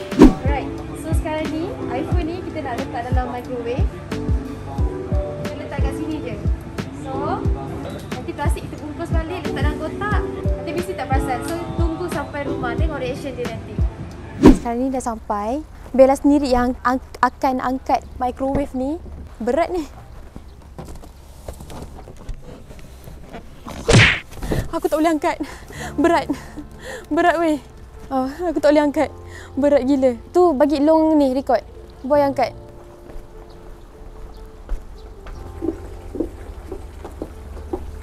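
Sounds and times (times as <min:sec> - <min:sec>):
footsteps on wooden deck: 0:17.9 - 0:25.1, 0:32.5 - 0:38.0
scuffs knocks and rustles: 0:18.5 - 0:25.0, 0:32.7 - 0:38.0.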